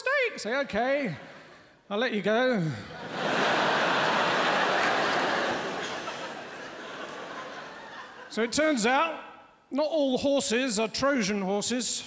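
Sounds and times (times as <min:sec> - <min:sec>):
audience laughing and applauding: 0:03.0 - 0:08.4.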